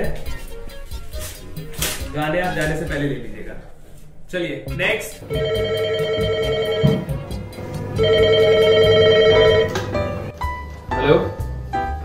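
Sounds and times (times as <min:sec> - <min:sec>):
desk telephone ringing: 0:05.3 - 0:07.3, 0:08.0 - 0:10.2.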